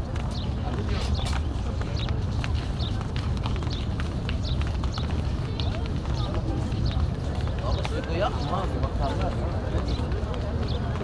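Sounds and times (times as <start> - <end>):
footsteps on hard paving: 0.0 - 11.0.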